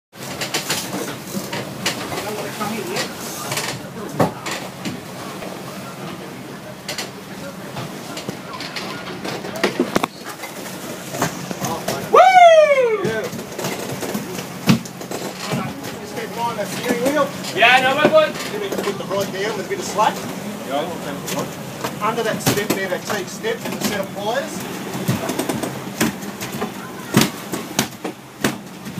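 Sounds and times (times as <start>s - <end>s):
loud falling cry: 12.1s - 13.2s
knocks on boat deck: 13.0s - 19.3s, 24.9s - 28.9s.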